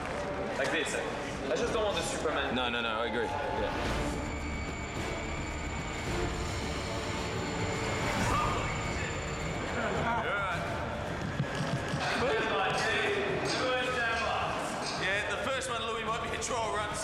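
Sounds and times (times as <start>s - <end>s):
indistinct voices: 1.6s - 15.2s.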